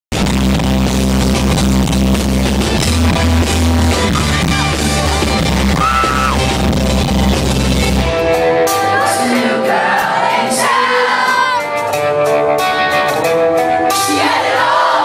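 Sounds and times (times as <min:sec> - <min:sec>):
live rock band playing loudly: 0:00.1 - 0:15.0.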